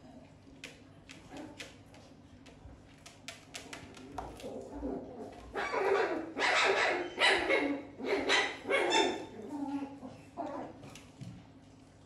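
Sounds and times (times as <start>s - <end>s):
fox yapping barks: 5.5s - 9.3s.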